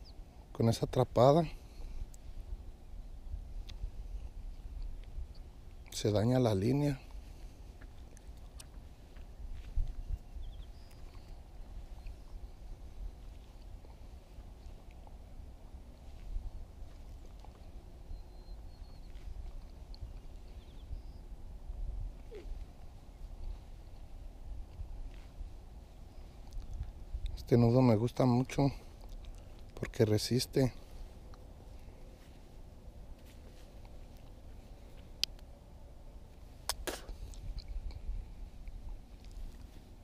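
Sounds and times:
wind rumble on microphone: 0:00.0 - 0:05.9, 0:06.9 - 0:40.0.

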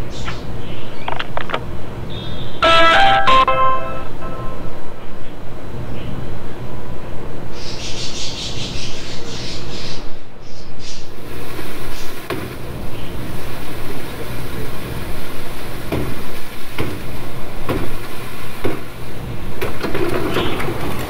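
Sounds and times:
water gushing onto plastic tarp: 0:11.2 - 0:21.0.

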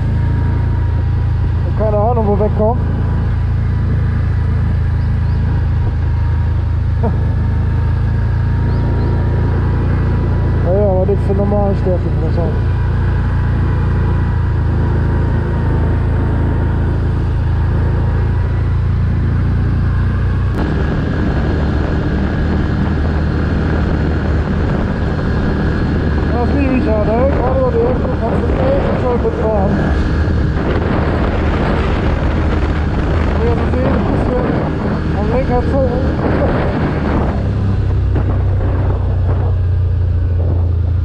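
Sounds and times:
quad engine running under throttle: 0:00.0 - 0:41.0.

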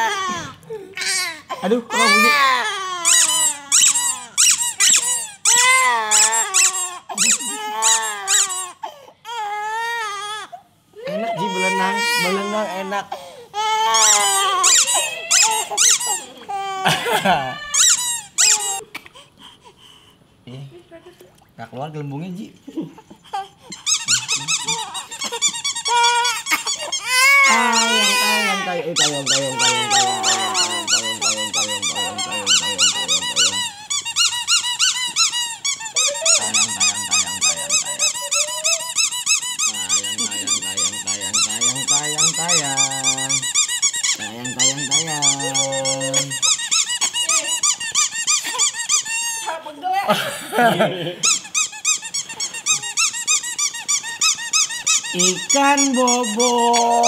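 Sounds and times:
rubber duck squeaking: 0:03.0 - 0:08.8, 0:13.9 - 0:16.4, 0:17.7 - 0:18.8, 0:23.7 - 0:49.5, 0:51.2 - 0:57.0.

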